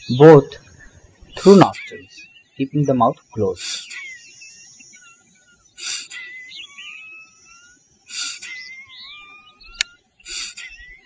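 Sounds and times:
birds whistling: 0.0 - 11.0
sharp nasal exhalations: 3.6 - 4.0, 5.8 - 6.2, 8.1 - 8.6, 10.3 - 10.8.

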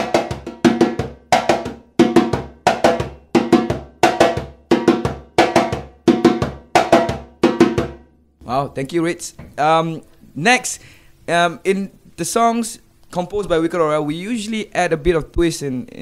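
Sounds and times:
hand drum rhythm: 0.0 - 8.1.

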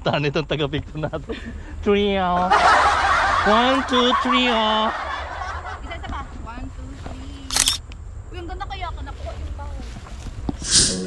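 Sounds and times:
camera shutter click: 7.5 - 7.8.

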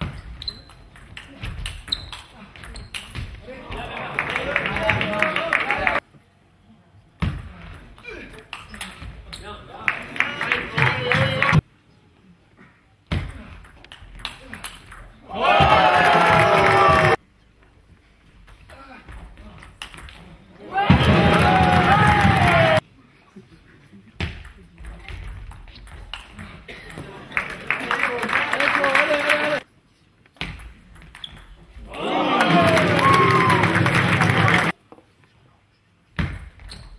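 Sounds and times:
people shouting: 15.3 - 17.2, 20.6 - 22.8, 31.9 - 34.7.

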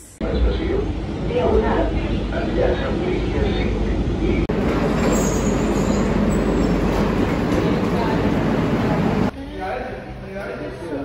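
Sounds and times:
metro train rumbling on rails: 0.0 - 9.3
high wheel squeal: 4.7 - 7.0.

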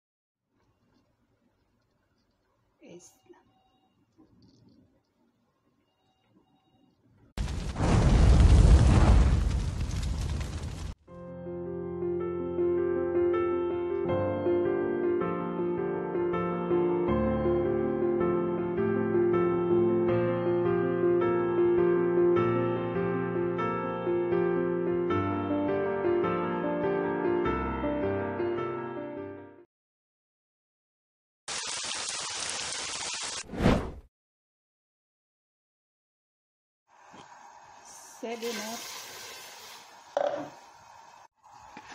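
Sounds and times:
rain hissing: 7.4 - 11.0, 31.5 - 33.4, 36.9 - 41.9
rumbling whoosh of flame: 7.4 - 11.0.

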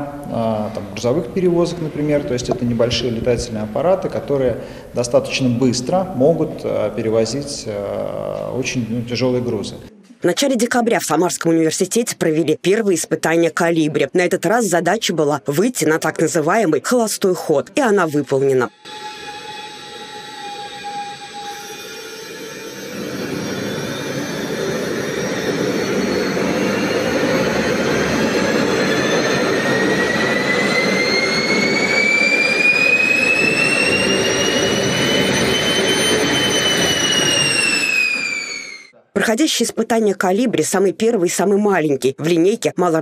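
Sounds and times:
gas turbine engine whine: 0.0 - 7.6, 18.7 - 38.9.

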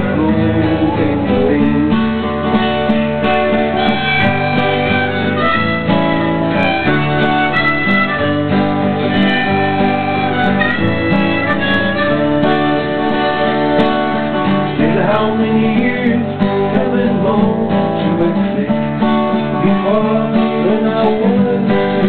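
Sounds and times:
harmonica: 0.0 - 15.4
strummed acoustic guitar: 0.0 - 22.0.

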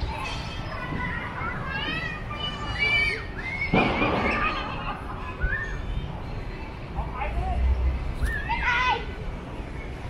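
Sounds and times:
children calling and squealing: 0.0 - 7.4, 8.0 - 10.0.

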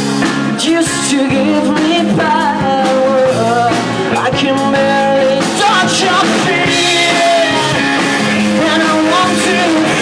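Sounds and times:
drum kit: 0.0 - 10.0
electric guitars: 0.0 - 10.0.

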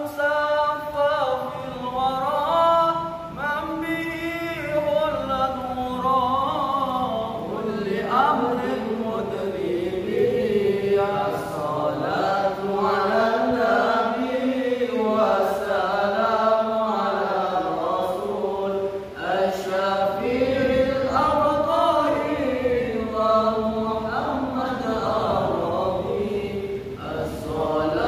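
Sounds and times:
young men chanting in unison: 0.0 - 28.0.

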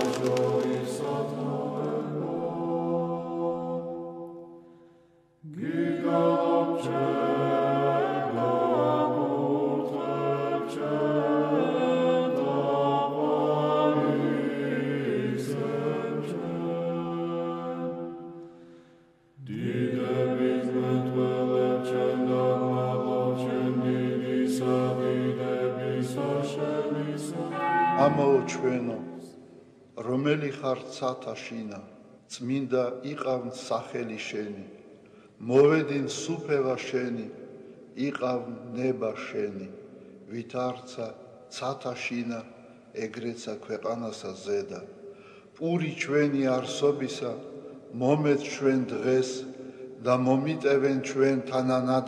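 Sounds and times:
choir chanting a cappella: 0.0 - 4.7, 5.4 - 18.4, 19.4 - 31.8, 45.8 - 52.0
low held bass note: 27.5 - 29.1.

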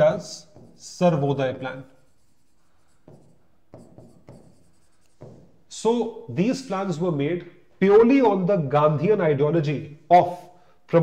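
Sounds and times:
stylus scratching on touchscreen: 0.0 - 5.6.

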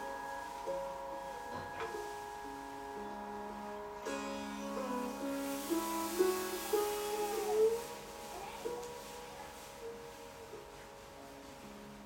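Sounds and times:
sitar melody with sliding bends: 0.0 - 12.0.

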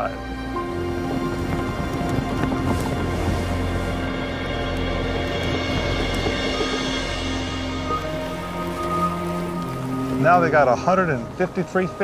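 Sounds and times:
background music of sustained notes: 0.0 - 12.0.

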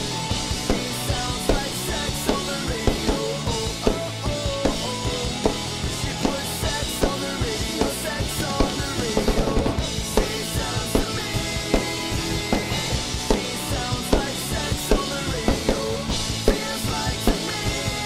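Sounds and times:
drum kit playing: 0.0 - 18.0
pop-punk backing track: 0.0 - 18.0.

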